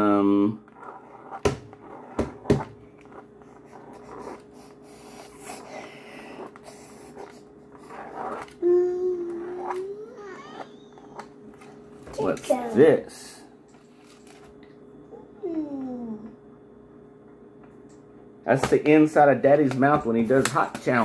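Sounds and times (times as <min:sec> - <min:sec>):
pen scratching on drawing board: 0:00.6 - 0:08.6, 0:09.2 - 0:11.2
child humming: 0:08.3 - 0:11.2, 0:15.2 - 0:16.4.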